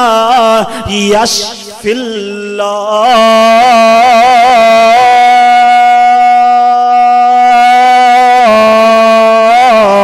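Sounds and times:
man chanting through microphone: 0.0 - 10.0.

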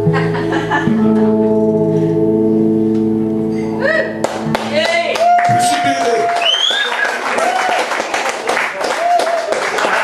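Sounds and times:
guitar chord ringing: 0.0 - 5.0
audience clapping: 4.2 - 10.0
high rising whistle: 6.4 - 7.1.

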